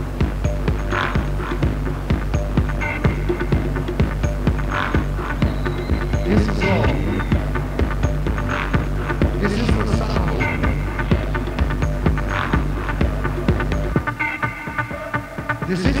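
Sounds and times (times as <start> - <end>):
electronic dance music: 0.0 - 16.0.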